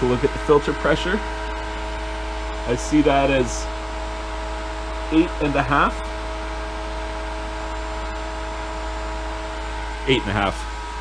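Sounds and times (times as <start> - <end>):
pool pump whirring: 0.0 - 11.0.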